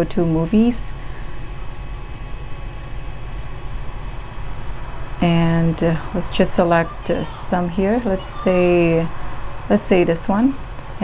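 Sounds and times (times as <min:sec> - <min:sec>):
low hum: 0:00.0 - 0:11.0
projector fan whirring: 0:00.0 - 0:11.0.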